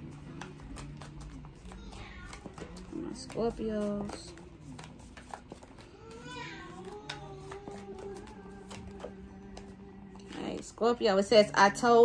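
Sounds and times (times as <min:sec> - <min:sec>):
cards shuffling: 0:00.0 - 0:10.7.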